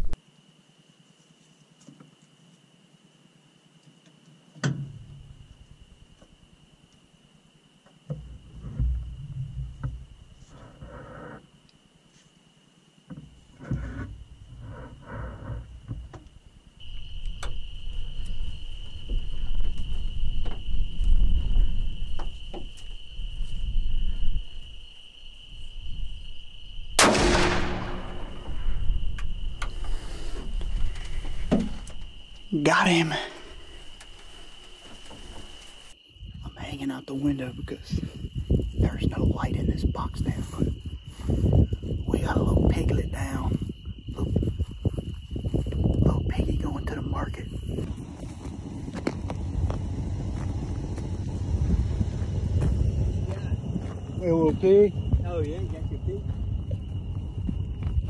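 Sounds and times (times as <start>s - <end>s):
rifle shot: 27.0s - 28.9s.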